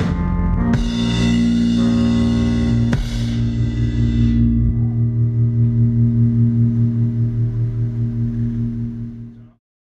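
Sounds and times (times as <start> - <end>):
band's low note ringing out: 0.0 - 9.6.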